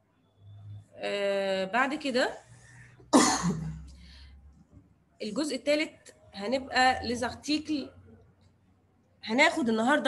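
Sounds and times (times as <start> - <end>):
woman coughing: 3.1 - 3.9.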